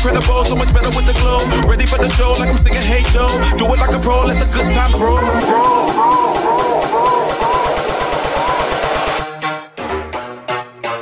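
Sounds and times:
electronic dance music: 0:00.0 - 0:10.2
repeated synth phrase: 0:04.9 - 0:09.2.

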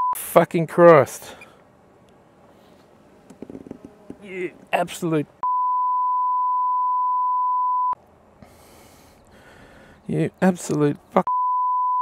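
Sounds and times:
censor bleep: 0:00.0 - 0:00.2, 0:05.4 - 0:08.0, 0:11.3 - 0:12.0.

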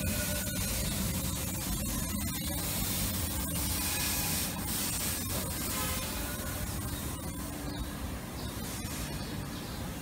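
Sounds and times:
constant hiss: 0:00.0 - 0:10.0.

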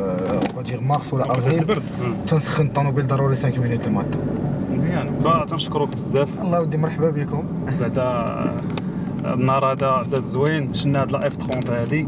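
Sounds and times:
car engine and road noise: 0:00.0 - 0:12.0
men talking: 0:00.0 - 0:12.0.

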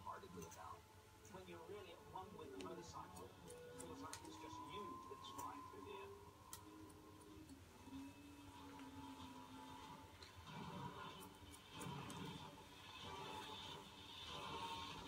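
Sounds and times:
faint television sound: 0:00.0 - 0:15.0.

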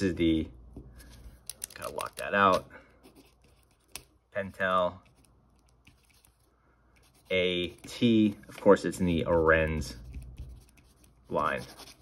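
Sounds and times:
pencil scratching on paper: 0:03.0 - 0:04.0, 0:07.0 - 0:08.2, 0:09.3 - 0:12.0.

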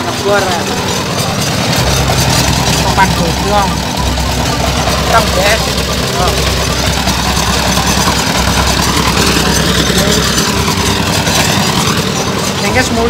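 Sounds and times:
drilling rig engine humming: 0:00.0 - 0:13.0.

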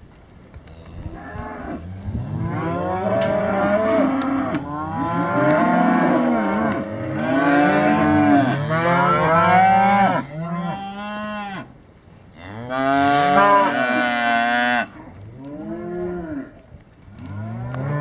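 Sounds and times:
cattle mooing: 0:00.7 - 0:11.7, 0:12.4 - 0:16.6, 0:17.2 - 0:18.0.

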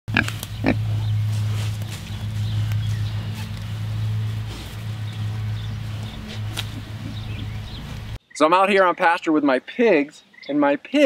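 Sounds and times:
pig grunting: 0:00.1 - 0:01.2
grass being chewed: 0:00.1 - 0:08.2
steady low hum: 0:00.1 - 0:08.2.

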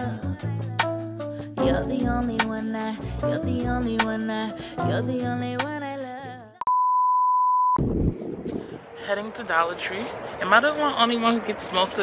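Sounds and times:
electronic censor beep: 0:06.6 - 0:07.8.

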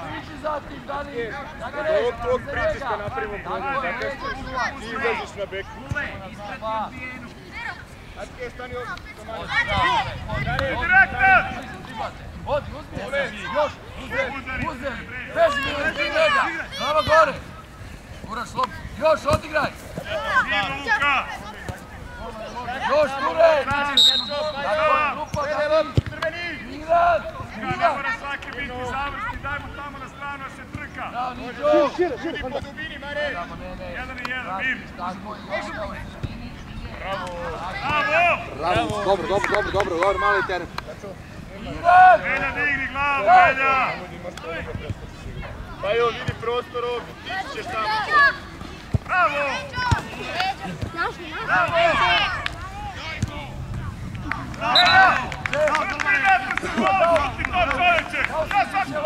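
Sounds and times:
people shouting and calling: 0:08.8 - 0:17.6, 0:37.0 - 0:40.6, 0:45.8 - 0:59.0
high shouted calls: 0:54.6 - 0:56.5.

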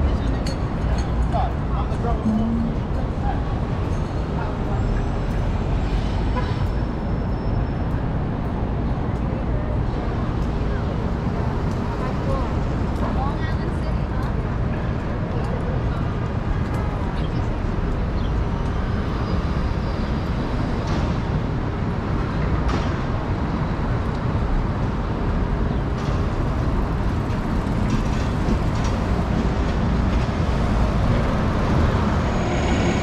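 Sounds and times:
city bus passing close: 0:00.0 - 0:33.0
city street traffic rumble: 0:00.0 - 0:33.0.

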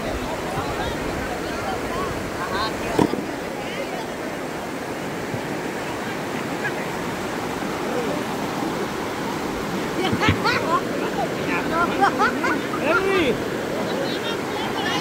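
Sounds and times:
river water rushing over rocks: 0:00.0 - 0:15.0.

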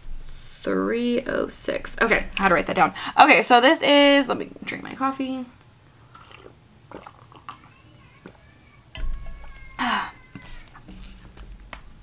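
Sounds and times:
person sipping and swallowing: 0:06.1 - 0:07.6.

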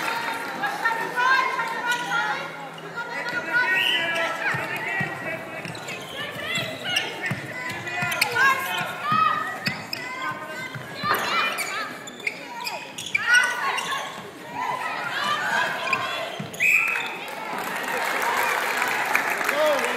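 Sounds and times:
voices echoing in a hall: 0:00.0 - 0:19.9
shoes squeaking on hardwood floor: 0:02.8 - 0:17.2
whistle blast: 0:16.6 - 0:17.1.

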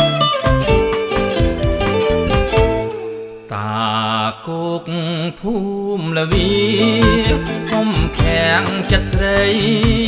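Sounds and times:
guitar: 0:00.0 - 0:03.6, 0:06.3 - 0:10.0
man singing with vibrato: 0:03.5 - 0:10.0
soft backing music: 0:06.3 - 0:10.0.

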